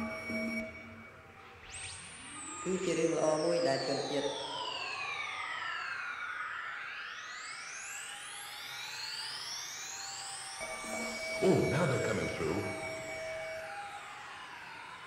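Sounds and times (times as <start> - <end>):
synthesizer tones gliding in pitch: 0.0 - 1.1, 10.6 - 15.0
steady synthesizer tone: 0.0 - 5.4, 10.6 - 14.1.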